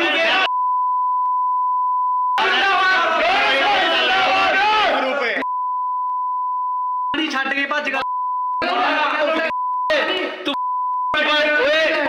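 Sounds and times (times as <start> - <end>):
men shouting slogans: 0.0 - 0.5, 2.4 - 5.4, 8.6 - 10.3
censor bleep tone: 0.5 - 2.4, 5.4 - 7.2, 8.0 - 8.6, 9.5 - 9.9, 10.6 - 11.2.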